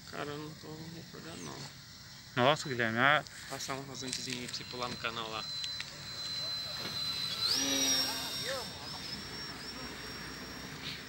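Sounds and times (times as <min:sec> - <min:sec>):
electric motor and propeller whine: 0:00.0 - 0:11.0.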